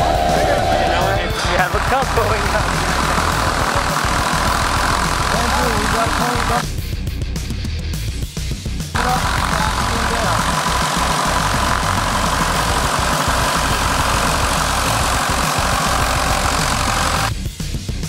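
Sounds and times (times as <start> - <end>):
loud engine with constant whine: 0.0 - 6.7, 9.0 - 17.3
rock music: 0.0 - 18.0.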